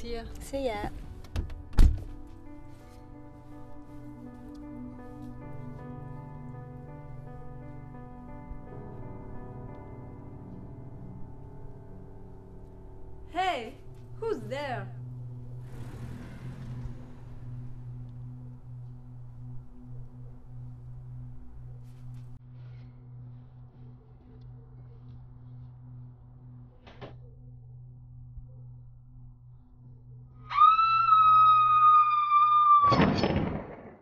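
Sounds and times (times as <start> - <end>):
low steady hum: 0.0 - 30.5
low drone: 0.0 - 33.0
shrill whistle-like tone: 30.4 - 33.0.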